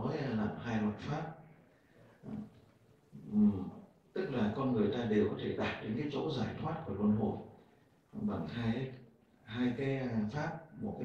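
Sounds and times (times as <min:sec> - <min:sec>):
man making hesitation sounds: 0:03.2 - 0:03.9.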